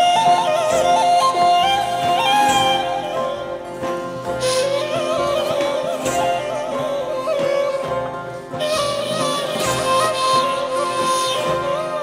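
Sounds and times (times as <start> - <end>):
small wind instrument melody: 0.0 - 12.0.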